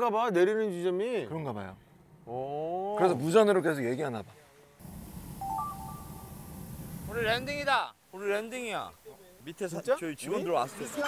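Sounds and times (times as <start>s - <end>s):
propane burner roaring: 4.8s - 7.8s
high electronic beeps: 5.4s - 6.3s.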